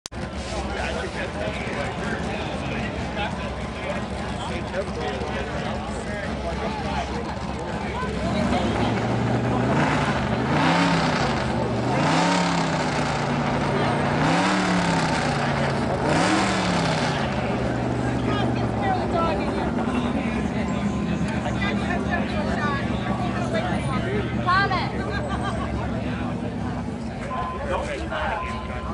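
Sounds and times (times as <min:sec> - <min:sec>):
tractor engine idling and revving: 0:00.0 - 0:28.9
crowd chatter: 0:00.1 - 0:28.9.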